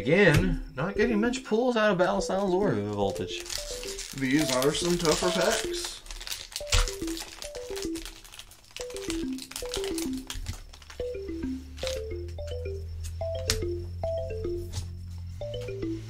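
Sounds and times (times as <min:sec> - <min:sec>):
mallet instrument tune: 0:02.2 - 0:05.9, 0:11.0 - 0:16.0
foil pack crinkling and tearing: 0:02.9 - 0:11.2.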